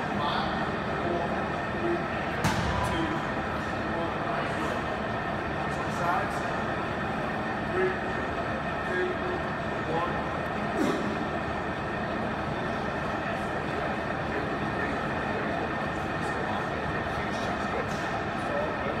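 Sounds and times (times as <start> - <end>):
faint indistinct voices: 0.0 - 19.0
gym room rumble and hiss: 0.0 - 19.0.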